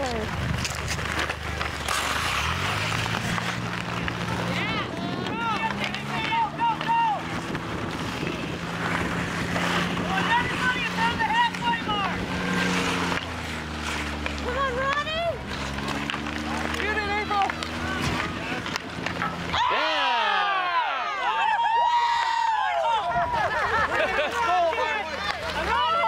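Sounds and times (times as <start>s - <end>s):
high shouting voices: 4.4s - 7.4s, 9.8s - 12.3s, 19.4s - 26.0s.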